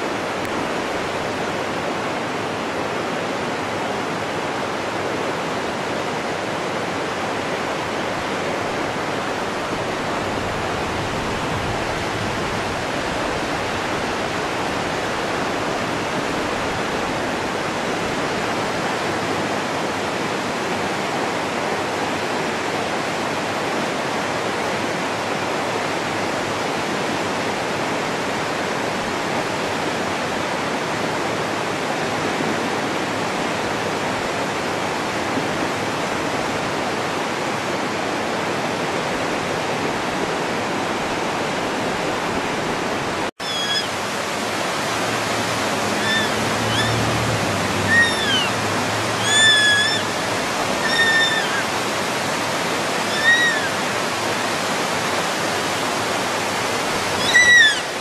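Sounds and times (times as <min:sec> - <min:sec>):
river water rushing: 0:00.0 - 0:58.0.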